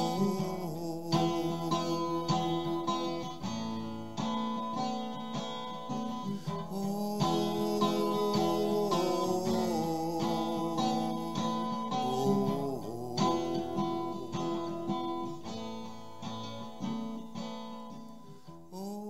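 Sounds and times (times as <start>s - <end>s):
acoustic guitar strumming chords: 0.0s - 19.0s.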